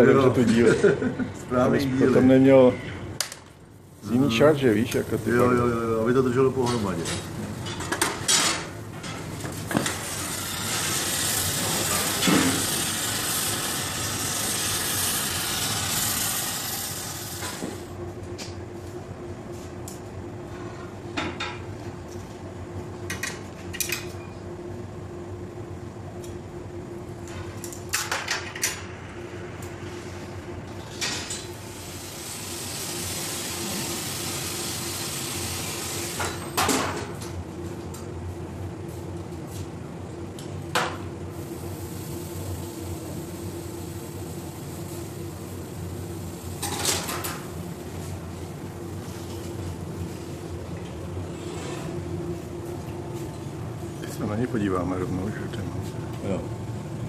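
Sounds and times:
gas torch hissing: 9.5s - 18.0s, 31.6s - 36.6s, 41.3s - 47.2s.

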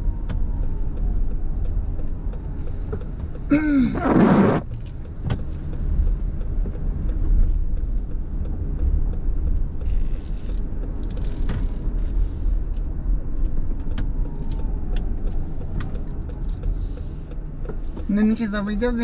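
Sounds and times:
road and engine rumble: 0.0s - 19.0s
turn signal ticking: 0.0s - 19.0s.

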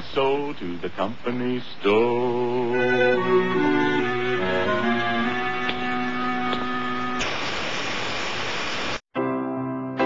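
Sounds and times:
static-like rushing hiss: 0.0s - 9.0s
sustained string music: 2.3s - 7.2s.

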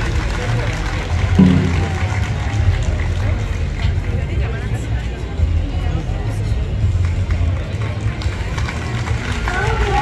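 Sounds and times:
held tone: 1.4s - 2.2s
low pulsing beat: 1.4s - 2.6s
crowd voices: 1.4s - 3.5s.

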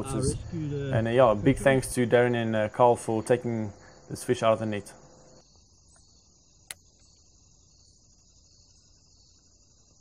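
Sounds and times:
insects chirring: 0.0s - 10.0s
sharp click: 6.6s - 7.2s.

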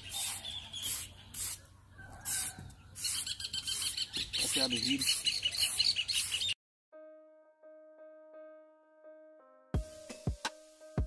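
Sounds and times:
bird trilling: 0.0s - 6.6s.

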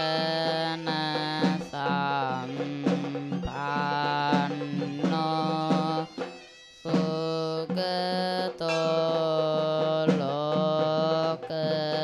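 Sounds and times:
music with long held notes: 0.0s - 12.0s.

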